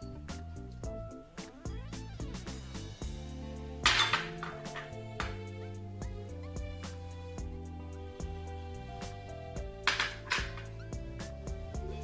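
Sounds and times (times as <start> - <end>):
background music: 0.0 - 12.0
glass bowl clinking: 3.8 - 5.4, 9.8 - 10.7.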